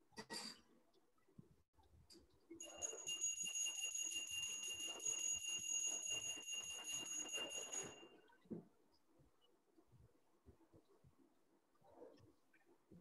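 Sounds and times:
bell ringing rapidly: 2.6 - 8.2.

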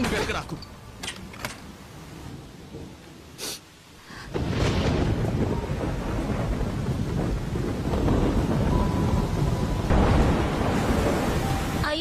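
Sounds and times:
heavy rain: 0.0 - 12.0
thunder rumbling: 1.6 - 3.4, 4.2 - 12.0.

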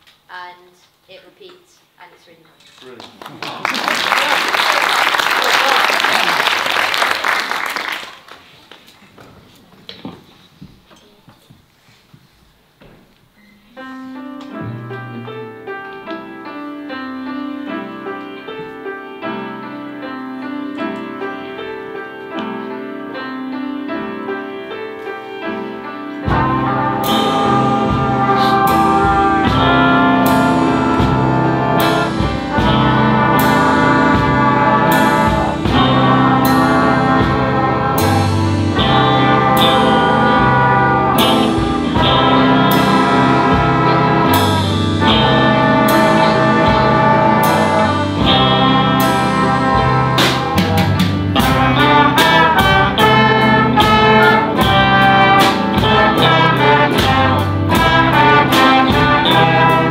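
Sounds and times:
band playing upbeat piece: 14.2 - 59.9
busy drumming: 26.2 - 59.9.

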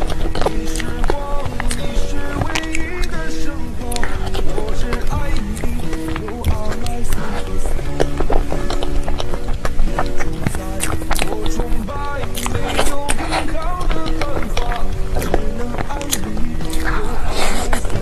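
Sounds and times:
song with melodic vocals: 0.0 - 8.8, 9.8 - 18.0.

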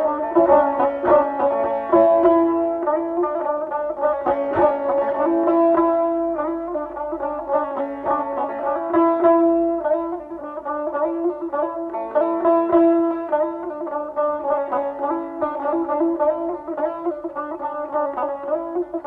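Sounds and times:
plucked lute music: 0.0 - 19.0.

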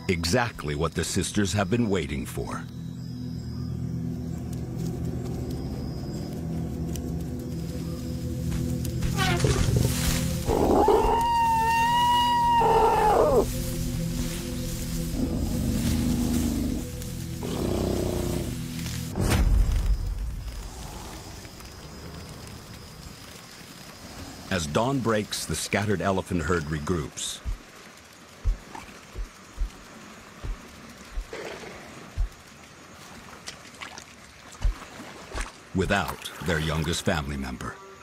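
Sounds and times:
tense background music: 0.0 - 24.6
elephant trumpet-scream: 9.0 - 13.5
weaker animal calls: 9.0 - 18.9.

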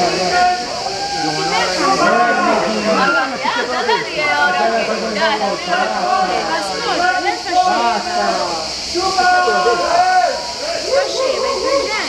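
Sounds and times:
people talking at once: 0.0 - 12.0
steady high hiss: 0.0 - 12.0.

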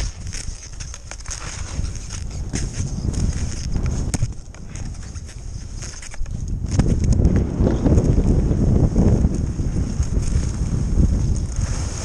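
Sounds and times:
scattered clicks: 0.0 - 8.2
skis scraping over snow: 0.0 - 12.0
wind rumbling on microphone: 0.0 - 12.0.

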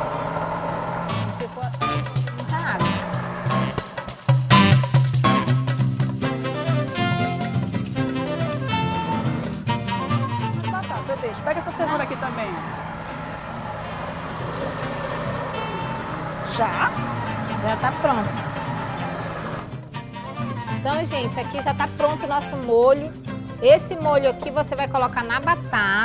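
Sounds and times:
blender running: 0.0 - 5.5, 10.9 - 19.8
plucked guitar music: 0.9 - 26.0.

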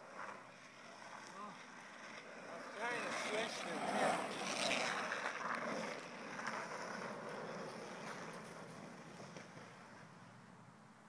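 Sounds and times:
longboard wheels rolling on asphalt: 0.0 - 11.0.

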